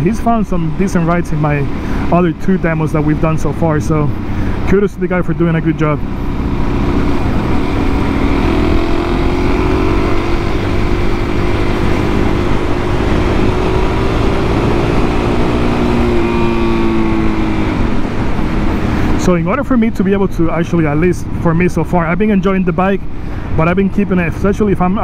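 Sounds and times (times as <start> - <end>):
motorcycle engine running: 0.0 - 21.8
wind rush on microphone: 6.0 - 25.0.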